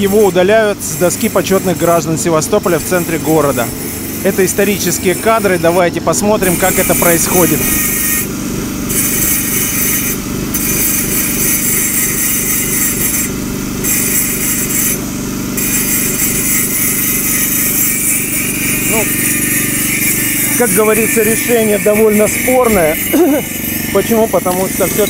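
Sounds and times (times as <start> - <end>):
angle grinder grinding stone: 0.0 - 25.0
generator engine hum: 0.0 - 25.0.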